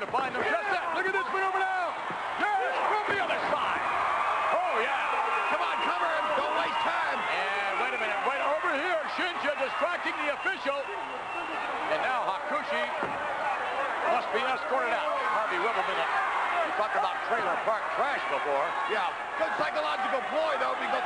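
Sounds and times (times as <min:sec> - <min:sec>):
men talking: 0:00.0 - 0:03.9, 0:04.5 - 0:21.0
arena crowd noise: 0:00.0 - 0:21.0.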